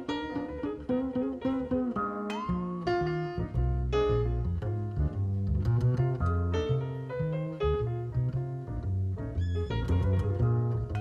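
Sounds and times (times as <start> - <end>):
double bass notes: 0.0 - 11.0.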